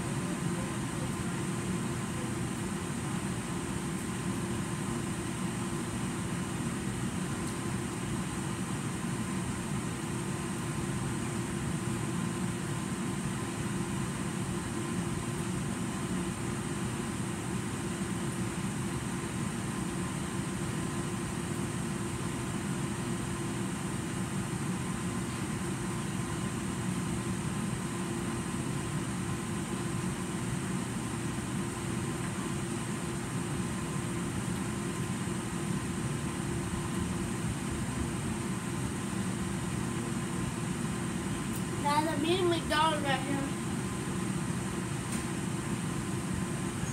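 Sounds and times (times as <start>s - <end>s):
air conditioning hum and rush: 0.0s - 46.9s.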